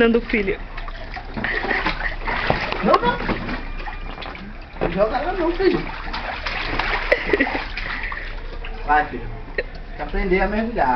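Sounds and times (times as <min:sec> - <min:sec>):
water splashing in paddling pool: 0:00.0 - 0:09.1.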